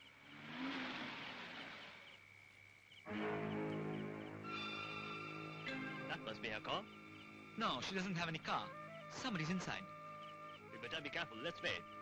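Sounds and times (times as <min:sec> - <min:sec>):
car driving past: 0:00.2 - 0:02.2.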